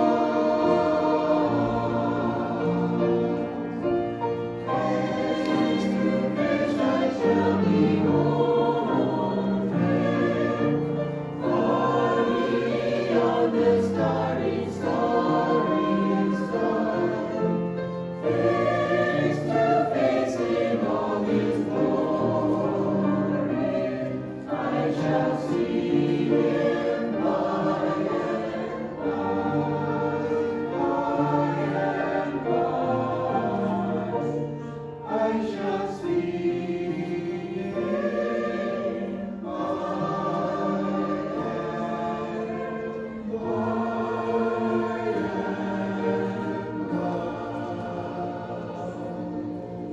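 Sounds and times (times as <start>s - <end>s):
choir singing a hymn: 0.0s - 49.9s
piano accompaniment: 0.0s - 49.9s.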